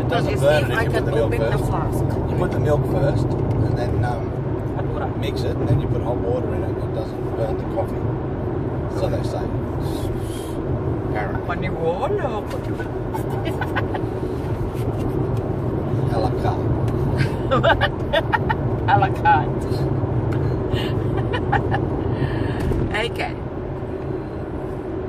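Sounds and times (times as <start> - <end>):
car road and engine noise: 0.0 - 25.0.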